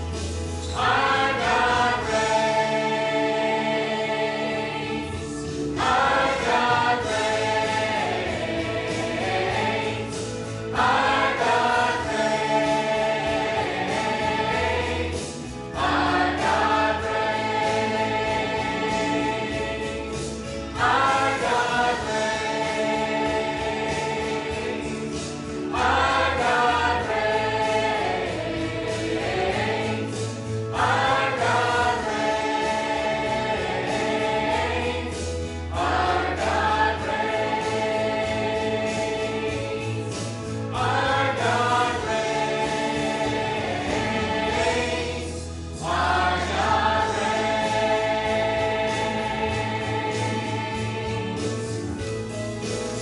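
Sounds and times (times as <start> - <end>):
church choir singing gospel: 0.0 - 53.0.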